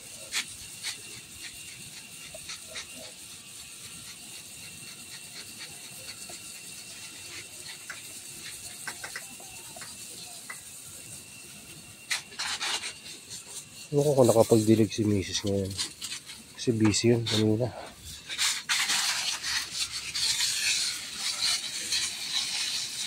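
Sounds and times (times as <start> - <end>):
hose water spraying hiss: 0.0 - 23.0.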